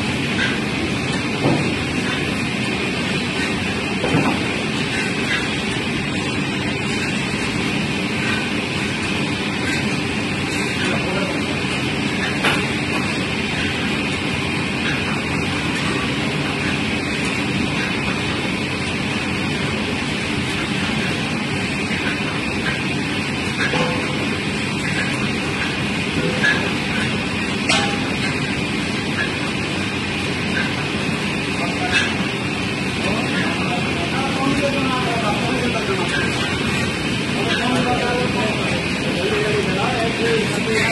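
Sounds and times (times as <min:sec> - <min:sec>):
mechanical stirrer noise: 0:00.0 - 0:40.9.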